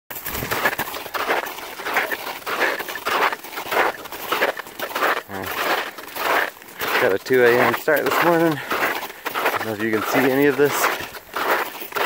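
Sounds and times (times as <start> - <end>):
heavy rhythmic breathing: 8.5 - 10.0.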